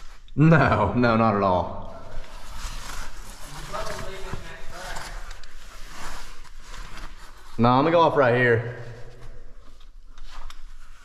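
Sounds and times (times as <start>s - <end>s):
gear rustling and scraping on rock: 2.2s - 7.6s.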